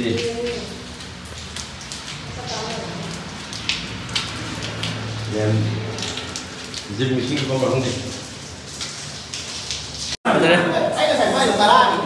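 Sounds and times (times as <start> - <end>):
sharp splashy ticks: 0.0 - 10.2
rainwater splashing and running: 0.0 - 12.0.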